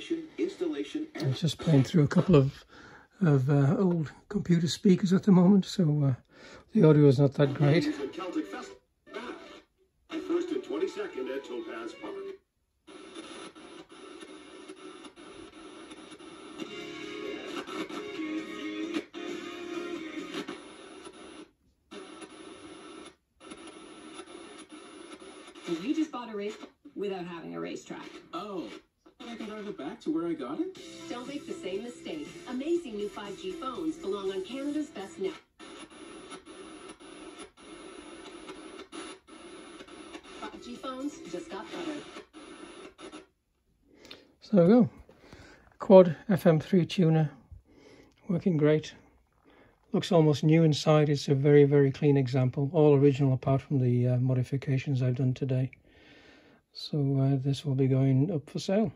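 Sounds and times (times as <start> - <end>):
radio talk and music: 0.0 - 43.3, 43.9 - 58.9.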